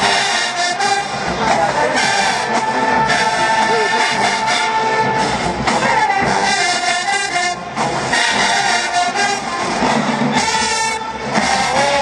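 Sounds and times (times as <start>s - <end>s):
marching band brass and drums: 0.0s - 12.0s.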